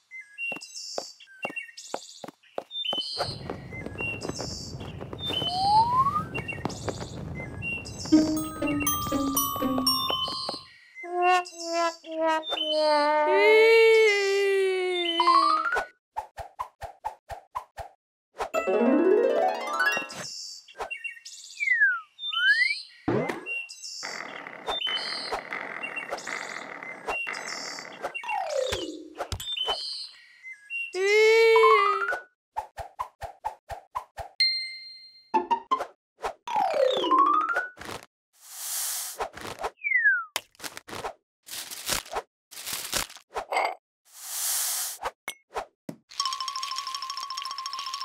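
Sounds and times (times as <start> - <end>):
birds chirping: 0.0 - 13.2
roller-skate wheels rolling: 3.4 - 10.2.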